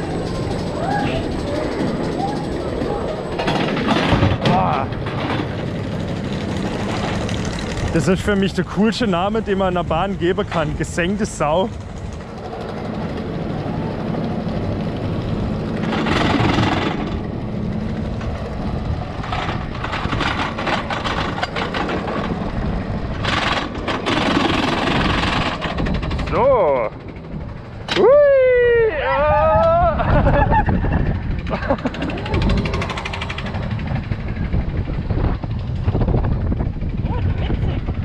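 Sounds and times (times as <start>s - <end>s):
riders whooping: 0.0s - 5.0s, 27.9s - 35.0s
roller coaster mechanical rattle: 0.0s - 38.0s.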